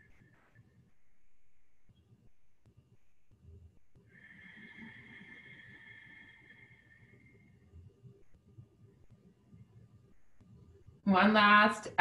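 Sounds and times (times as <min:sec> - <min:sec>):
slow breath out: 0:04.1 - 0:07.6.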